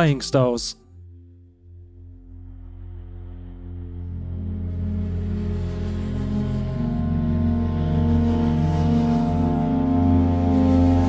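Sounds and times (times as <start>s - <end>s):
ambient woodwind chord: 0.0s - 11.0s
low drone: 0.0s - 11.0s.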